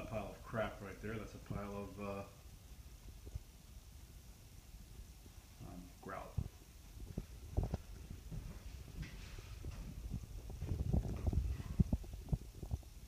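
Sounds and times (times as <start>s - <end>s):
footsteps: 6.4s - 12.9s.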